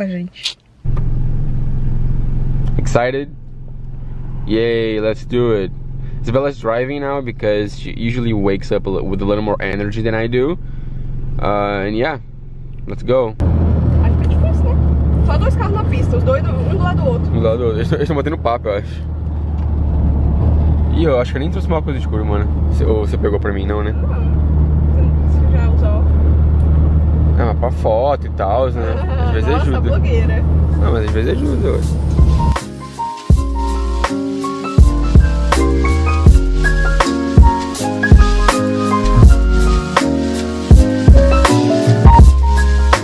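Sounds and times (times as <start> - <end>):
car cabin rumble: 0.0 - 43.0.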